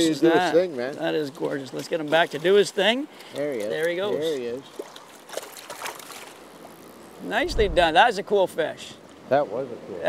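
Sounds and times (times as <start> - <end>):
small water splashes: 4.5 - 6.8
river water running: 4.6 - 8.2.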